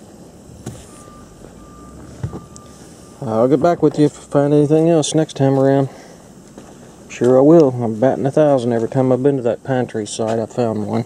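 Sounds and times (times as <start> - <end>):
electronic beeps: 0.7 - 4.4.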